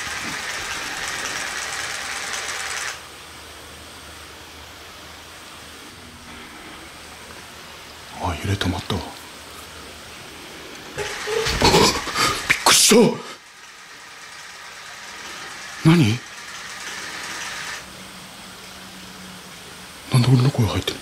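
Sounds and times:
steady low hiss: 0.0 - 21.0.

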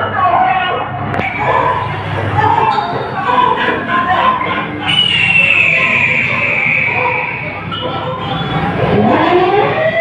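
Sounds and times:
background voices: 1.2 - 9.1
high tone falling in pitch: 1.2 - 9.9.

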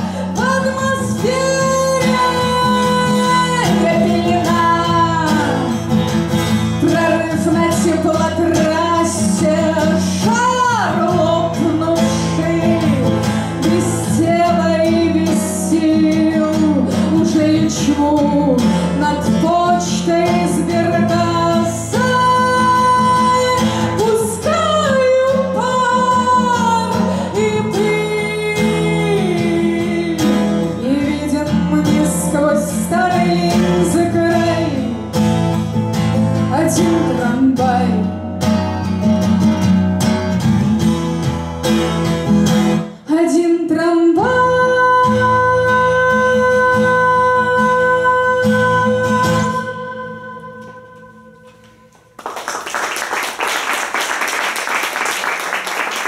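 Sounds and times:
woman singing: 0.0 - 35.1, 36.2 - 38.4, 43.0 - 51.9
strummed acoustic guitar: 0.0 - 52.0.

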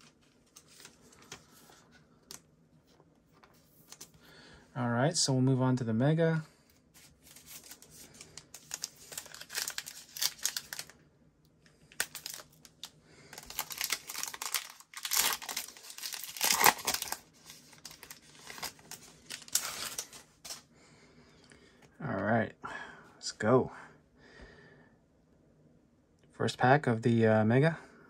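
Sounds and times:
foil wrapper crinkling and tearing: 7.0 - 11.0, 11.8 - 20.6.

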